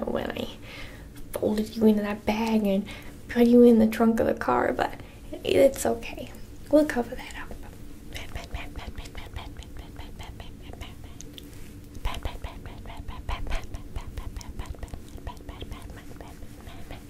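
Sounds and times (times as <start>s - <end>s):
makeup brush on microphone: 8.2s - 17.0s.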